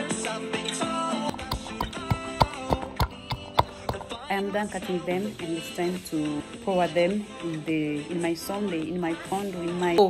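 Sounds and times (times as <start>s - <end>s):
pestle pounding in wooden mortar: 1.3s - 4.4s.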